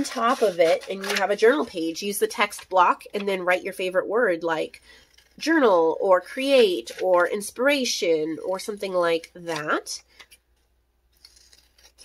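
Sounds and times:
scissors snipping paper: 11.2 - 12.0.

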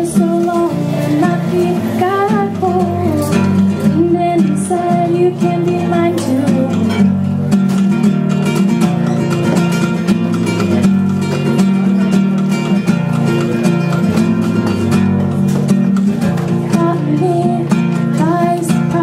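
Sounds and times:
woman singing: 0.0 - 7.3, 16.6 - 19.0
classical guitar playing: 0.0 - 19.0.

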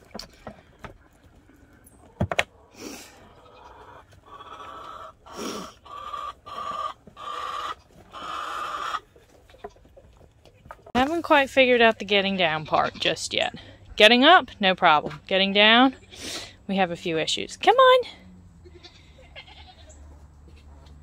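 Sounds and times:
hen clucking: 0.6 - 16.6.

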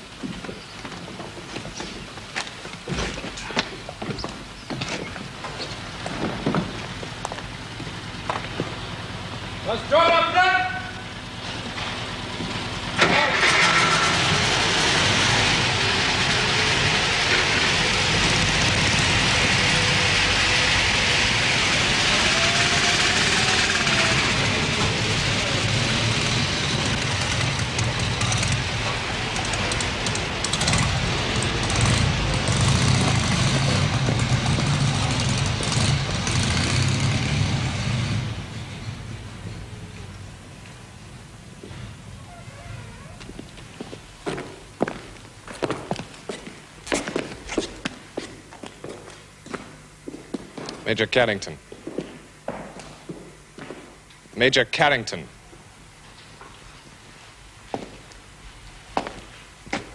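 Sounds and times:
lorry engine running: 3.3 - 47.4.

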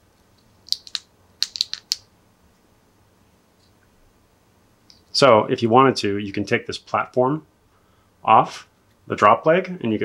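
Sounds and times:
small plastic parts clicking: 0.4 - 2.0.

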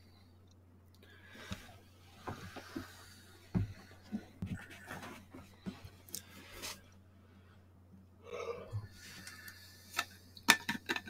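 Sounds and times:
low electrical hum: 0.0 - 11.0
soft bumps and breathy noises: 1.3 - 6.8.

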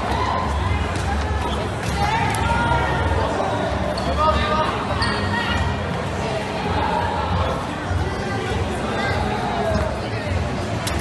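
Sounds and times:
voices and shouts: 0.0 - 10.6.

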